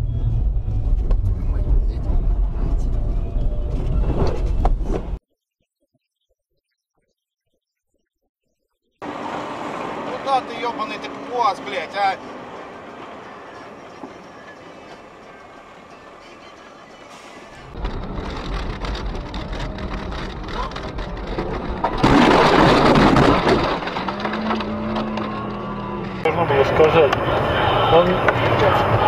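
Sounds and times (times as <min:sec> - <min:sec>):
car engine and road rumble: 0:00.0 - 0:05.2, 0:09.0 - 0:29.0
car crashing into snow: 0:21.4 - 0:24.7.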